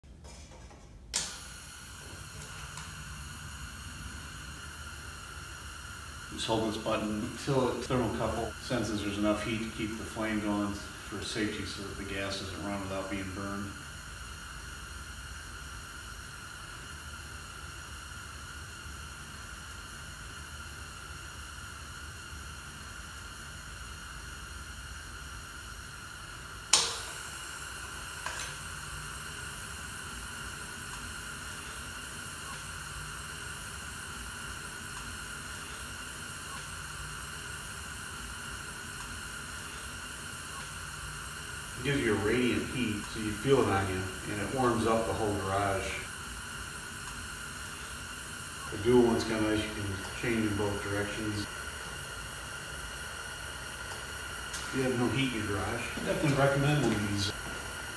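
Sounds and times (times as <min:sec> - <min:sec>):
gas heater hissing: 0:00.5 - 0:57.9
burner igniter click: 0:01.1 - 0:01.7, 0:26.7 - 0:27.4.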